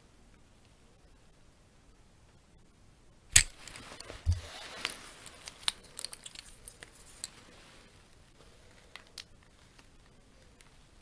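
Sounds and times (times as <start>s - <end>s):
metal rings clicking: 4.3s - 7.3s.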